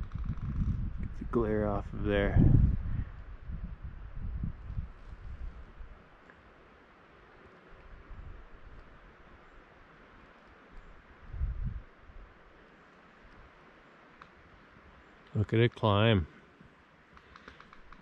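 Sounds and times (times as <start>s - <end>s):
wind rumbling on microphone: 0.0s - 6.6s, 7.6s - 9.7s, 10.6s - 12.5s
faint outdoor ambience: 0.0s - 18.0s.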